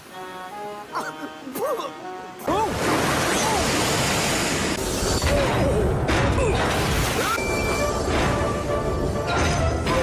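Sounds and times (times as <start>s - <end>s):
water splashing: 2.4s - 4.8s.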